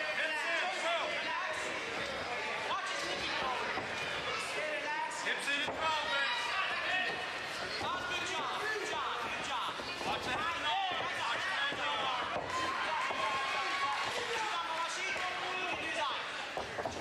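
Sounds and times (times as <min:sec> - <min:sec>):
crowd shouting and yelling: 0:00.0 - 0:17.0.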